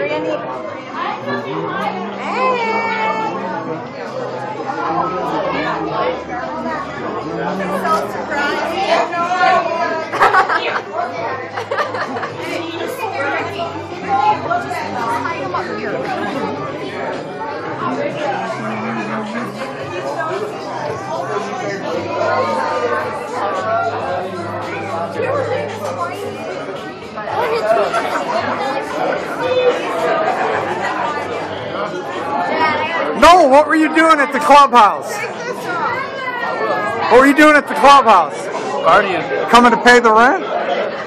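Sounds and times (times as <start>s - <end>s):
people chattering: 0.0s - 41.0s.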